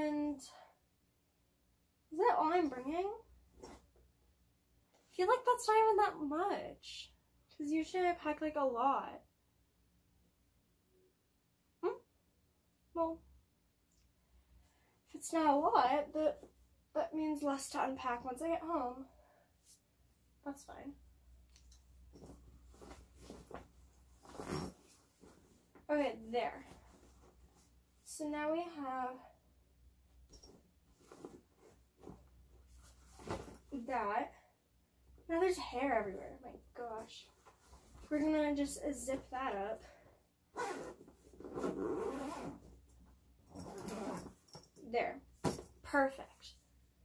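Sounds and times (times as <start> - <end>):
cloth rustling into a bag: 22.0 - 25.9, 26.6 - 27.9, 30.3 - 33.8, 40.6 - 42.8, 43.5 - 44.6
zipper click: 40.6 - 42.6, 43.5 - 44.6
zipper being pulled shut: 40.6 - 42.7, 43.5 - 44.4.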